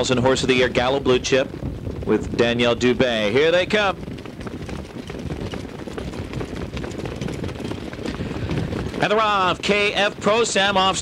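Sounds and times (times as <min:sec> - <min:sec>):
low rumble of horses and sulkies: 0:00.0 - 0:11.0.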